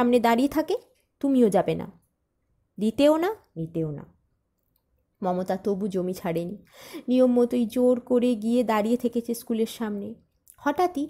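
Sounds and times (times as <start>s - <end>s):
woman reading aloud: 2.8s - 4.1s, 5.2s - 11.0s.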